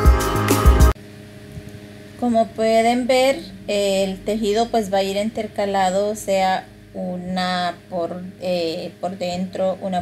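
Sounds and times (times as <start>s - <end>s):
music with drum beat: 0.0s - 1.0s
low steady hum: 0.8s - 10.0s
woman speaking: 2.2s - 10.0s.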